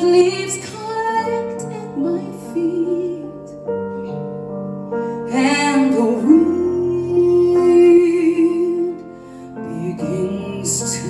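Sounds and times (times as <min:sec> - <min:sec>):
woman singing with vibrato: 0:00.0 - 0:03.5, 0:05.3 - 0:09.0, 0:09.6 - 0:11.0
piano chords: 0:00.0 - 0:11.0.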